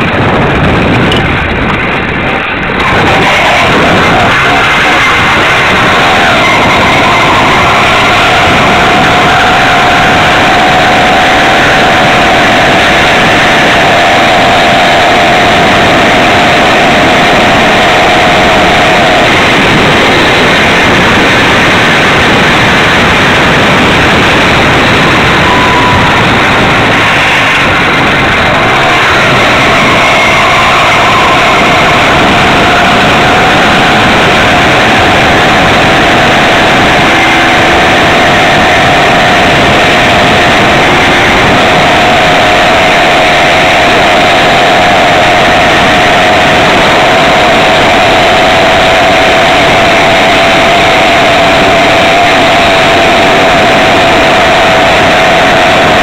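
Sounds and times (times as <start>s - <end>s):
wind and road noise: 0.0s - 56.0s.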